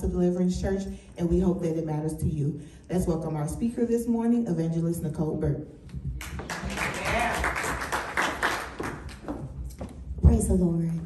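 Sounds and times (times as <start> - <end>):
microphone handling taps and knocks: 5.4 - 6.5, 8.9 - 11.0
scattered clapping: 6.2 - 9.4.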